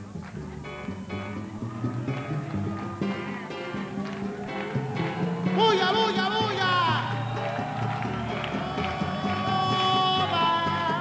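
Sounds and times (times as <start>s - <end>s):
congas: 0.0s - 11.0s
salsa band playing: 0.0s - 11.0s
singer: 5.4s - 11.0s.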